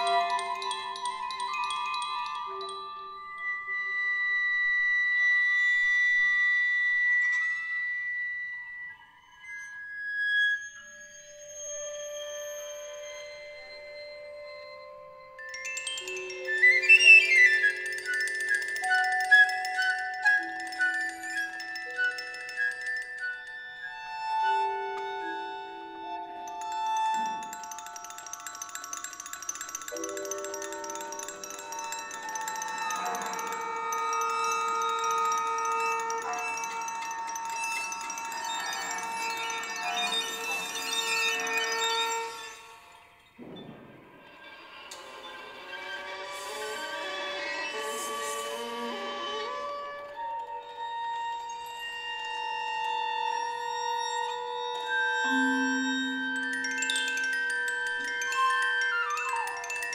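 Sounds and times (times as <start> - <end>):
bell-like tinkling figures: 0.0 - 6.3, 10.6 - 59.9
chamber music with high held tones: 0.0 - 59.9.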